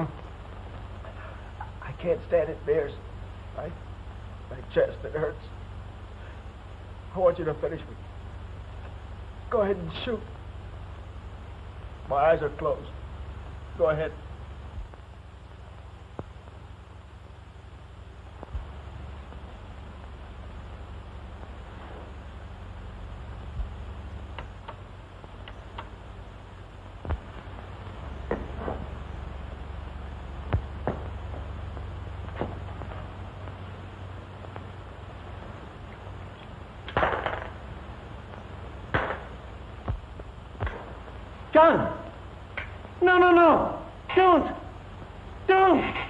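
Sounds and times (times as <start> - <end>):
film soundtrack hum and hiss: 0.0 - 46.0.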